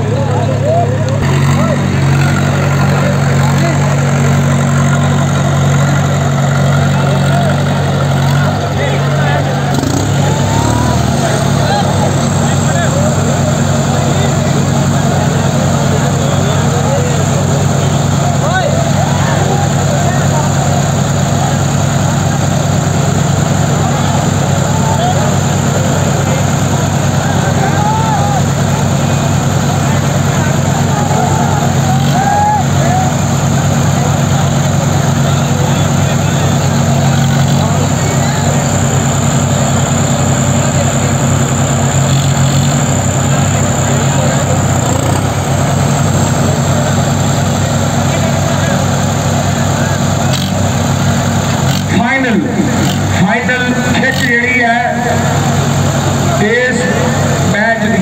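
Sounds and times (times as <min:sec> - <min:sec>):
tractor diesel engines running: 0:00.0 - 0:58.0.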